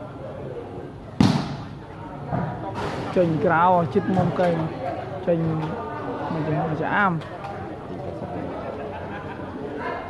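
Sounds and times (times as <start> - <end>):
low crowd chatter: 0.0 - 10.0
volleyball struck by hand: 1.2 - 1.8.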